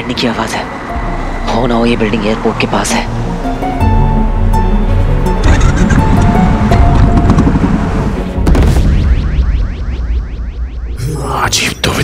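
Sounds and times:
background music with held tones: 0.5 - 8.5.

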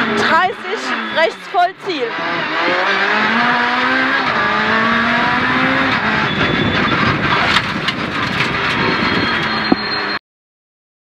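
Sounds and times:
rally car engine under throttle: 0.0 - 10.2
road and tyre noise: 0.0 - 10.2.

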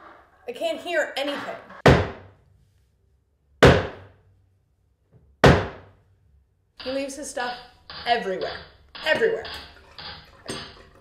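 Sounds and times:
hammer bangs: 1.8 - 2.3, 3.6 - 4.2, 5.4 - 6.0.

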